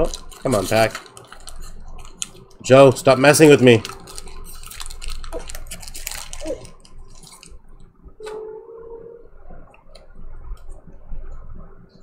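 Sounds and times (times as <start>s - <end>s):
foil wrapper crinkling and tearing: 0.0s - 7.6s.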